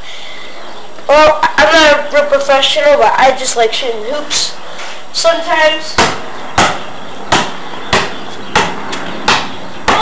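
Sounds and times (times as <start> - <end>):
basketball bouncing on concrete: 5.9 - 10.0.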